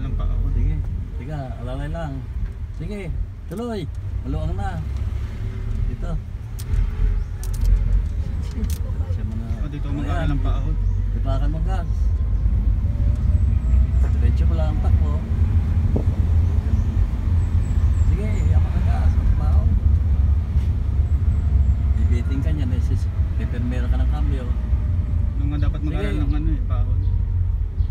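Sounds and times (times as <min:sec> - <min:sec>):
car engine and tyre rumble: 0:00.0 - 0:27.9.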